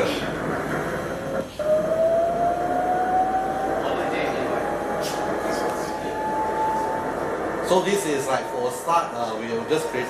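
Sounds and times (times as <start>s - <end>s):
saw motor whine: 1.6s - 10.0s.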